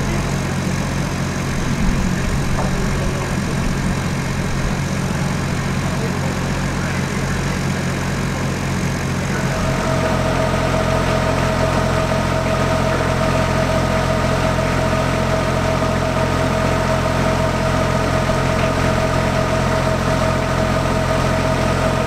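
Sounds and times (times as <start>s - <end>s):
engine idling with whine: 0.0s - 22.0s.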